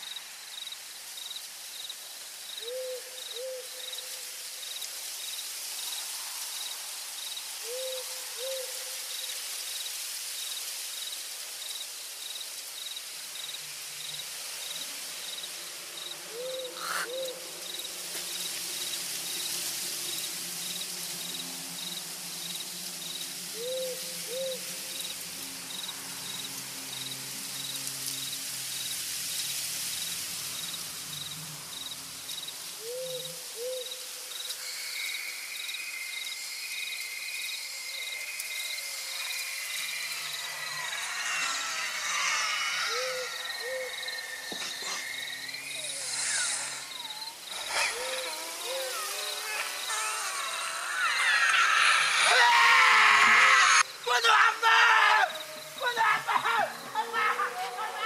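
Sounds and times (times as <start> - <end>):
insects trilling: 0.0 - 58.0
owl hooting: 2.6 - 3.8, 7.6 - 8.8, 16.3 - 17.4, 23.6 - 24.7, 32.8 - 34.0, 37.4 - 52.6.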